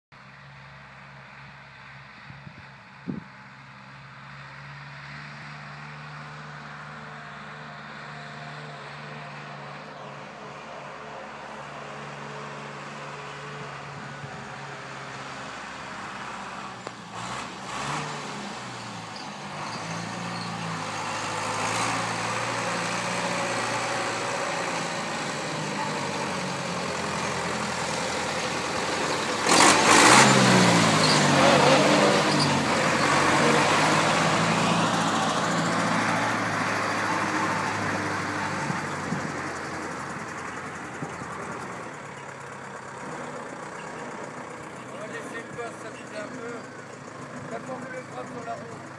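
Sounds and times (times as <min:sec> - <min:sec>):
tractor diesel engine passing: 0:00.2 - 0:48.9.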